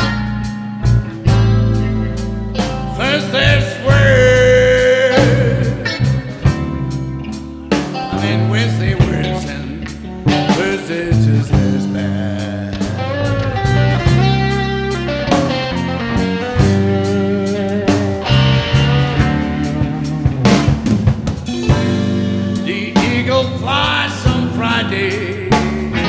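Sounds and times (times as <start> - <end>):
blues band playing: 0.0 - 26.0
lead guitar: 0.0 - 26.0.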